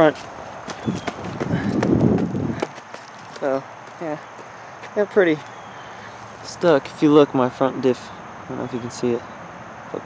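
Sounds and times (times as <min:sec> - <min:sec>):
footsteps: 0:00.0 - 0:05.5.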